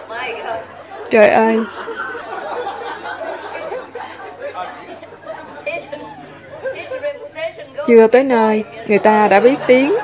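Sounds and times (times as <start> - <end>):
listeners chatting: 0.0 - 10.0.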